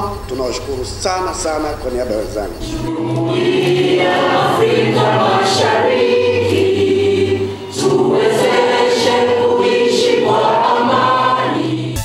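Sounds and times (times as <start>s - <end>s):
group of people singing: 2.8s - 12.0s.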